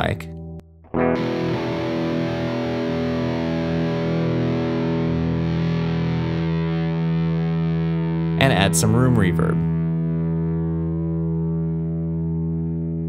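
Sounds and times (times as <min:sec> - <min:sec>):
distorted electric guitar chord: 0:00.0 - 0:13.0.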